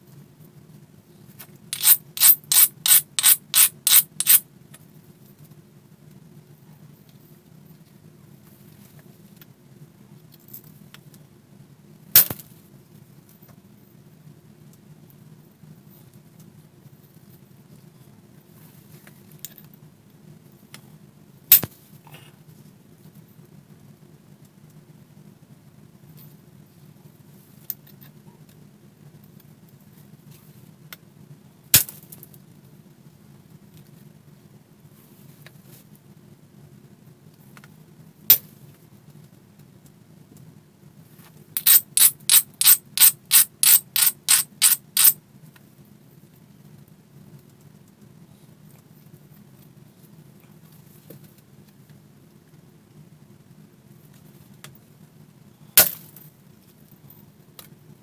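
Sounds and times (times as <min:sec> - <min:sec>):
stone rasping strokes: 0:01.8 - 0:04.4, 0:41.6 - 0:45.2.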